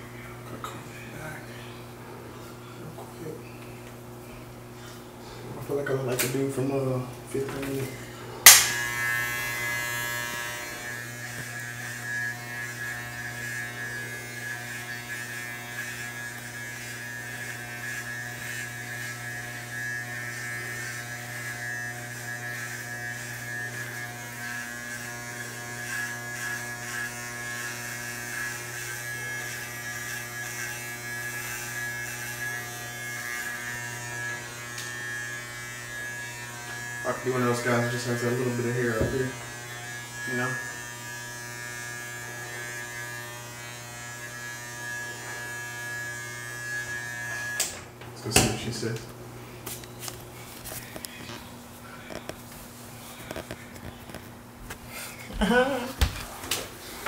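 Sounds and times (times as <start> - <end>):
hair clippers buzzing: 5.6 - 57.0
hair clipper switch click: 8.5 - 9.1.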